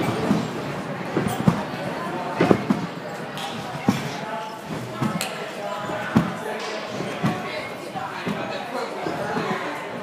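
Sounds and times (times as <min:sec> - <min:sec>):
dull thuds: 0:03.6 - 0:05.2, 0:06.0 - 0:06.4, 0:07.0 - 0:07.5, 0:08.2 - 0:09.6.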